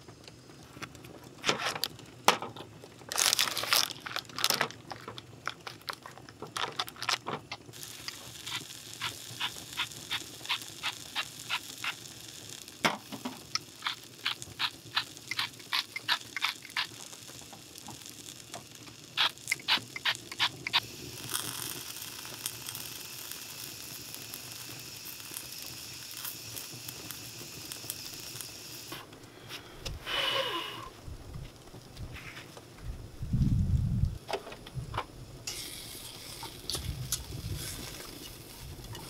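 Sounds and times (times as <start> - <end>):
seasoning mill grinding clicks: 3.2 - 28.5
food sizzling in a pan: 7.6 - 29.0, 35.5 - 39.0.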